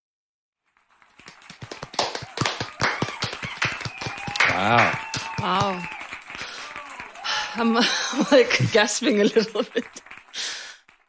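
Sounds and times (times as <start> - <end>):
small group applauding: 0.6 - 11.0.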